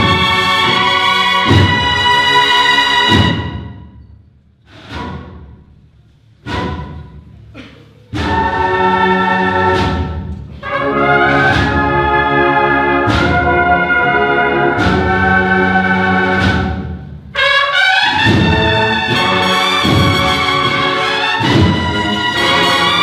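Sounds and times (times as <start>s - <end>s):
brass band chords: 0.0s - 3.8s, 8.2s - 23.0s
drum strokes: 0.0s - 23.0s.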